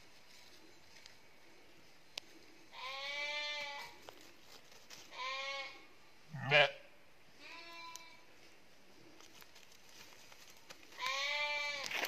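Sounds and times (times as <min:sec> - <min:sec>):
sheep bleating: 0:02.7 - 0:03.9, 0:05.1 - 0:06.8, 0:11.0 - 0:12.0
loud harsh sheep call: 0:05.1 - 0:06.8, 0:11.0 - 0:12.0.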